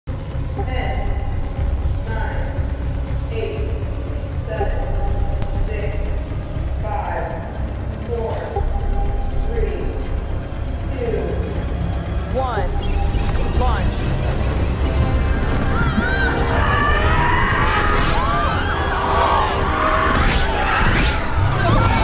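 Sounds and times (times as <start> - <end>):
deep rumble: 0.1 - 19.0
soundtrack music: 0.1 - 22.0
crowd shouting and crying: 15.1 - 22.0.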